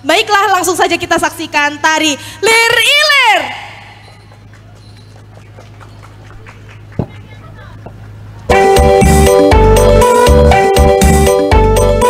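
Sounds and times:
woman's amplified announcement call: 0:00.0 - 0:05.2, 0:06.9 - 0:08.1
open-air ambience: 0:00.0 - 0:12.0
sound system hum: 0:03.4 - 0:12.0.

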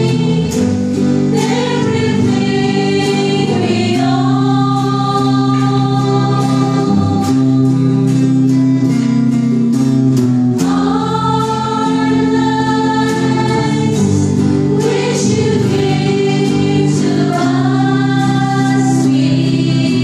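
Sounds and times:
choir singing: 0:00.0 - 0:08.7, 0:10.6 - 0:20.0
acoustic guitar: 0:00.0 - 0:20.0
electric guitar: 0:00.0 - 0:20.0.

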